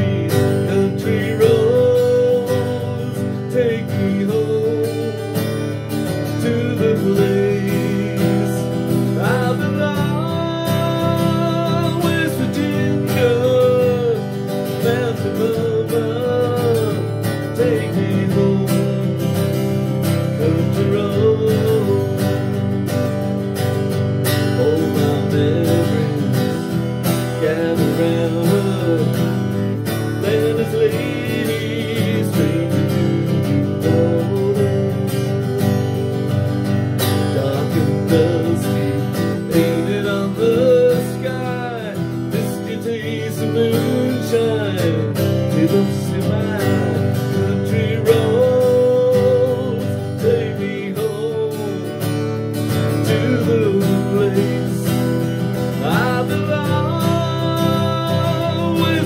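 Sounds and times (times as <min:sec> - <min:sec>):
acoustic guitar strummed: 0:00.0 - 0:59.0
man singing: 0:00.0 - 0:59.0.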